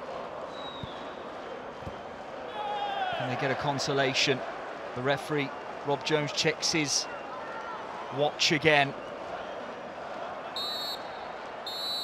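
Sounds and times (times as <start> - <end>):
stadium crowd booing: 0.0 - 12.0
referee's whistle blasts: 11.7 - 12.0.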